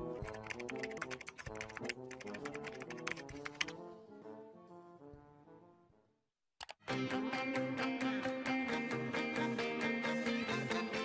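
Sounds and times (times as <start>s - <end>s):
background music: 0.0s - 6.1s, 6.8s - 11.0s
keyboard typing clicks: 0.2s - 3.8s, 6.6s - 6.8s.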